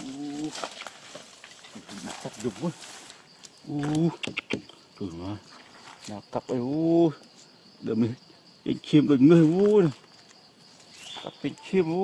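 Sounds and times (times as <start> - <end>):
man speaking: 5.0 - 7.2, 11.2 - 12.0.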